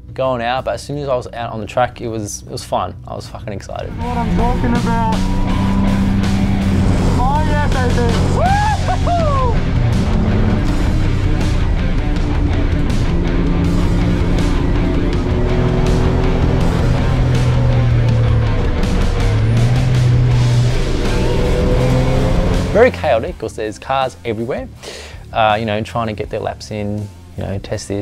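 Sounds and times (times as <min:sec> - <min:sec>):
background music: 0:00.0 - 0:28.0
car engine from inside cabin: 0:03.9 - 0:22.9.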